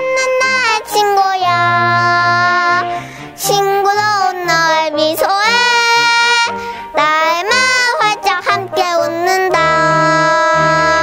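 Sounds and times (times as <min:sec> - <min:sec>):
child singing: 0:00.0 - 0:11.0
instrumental accompaniment: 0:00.0 - 0:11.0.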